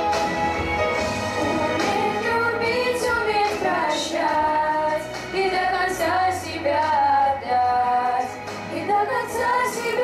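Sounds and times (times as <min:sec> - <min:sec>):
backing music: 0:00.0 - 0:10.0
children singing into microphones: 0:01.4 - 0:10.0.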